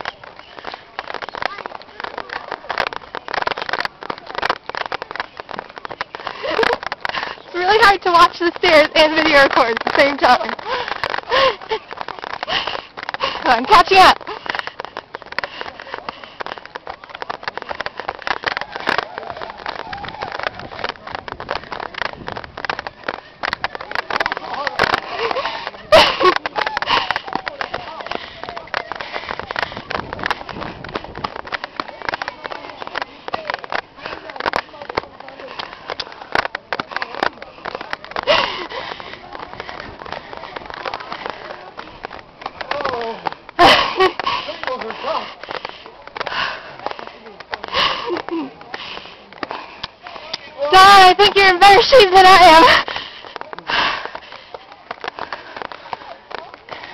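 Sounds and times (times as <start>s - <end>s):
footsteps on stone stairs: 0.0s - 56.9s
heavy out-of-breath breathing: 6.1s - 7.6s, 10.5s - 11.8s, 12.4s - 13.6s, 14.2s - 19.3s, 24.4s - 50.6s, 52.6s - 56.9s.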